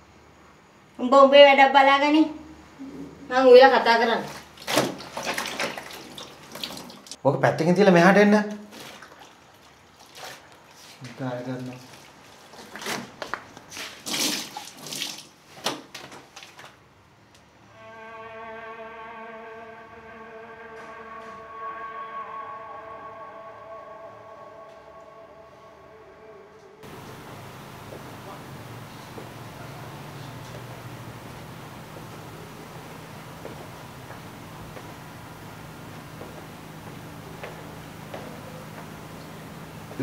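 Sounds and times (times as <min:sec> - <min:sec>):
water running from a tap: 0:04.5 - 0:07.2
held string chord: 0:17.7 - 0:25.9.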